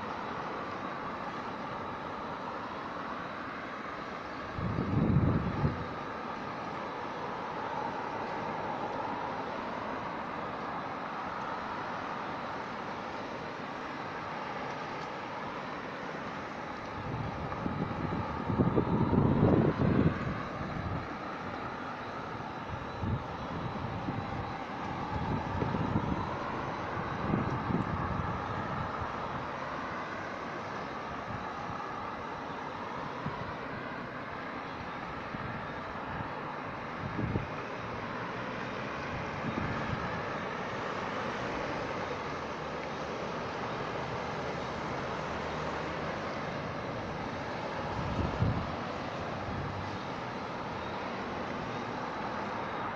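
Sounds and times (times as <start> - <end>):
cars driving on wet road: 0.0 - 52.9.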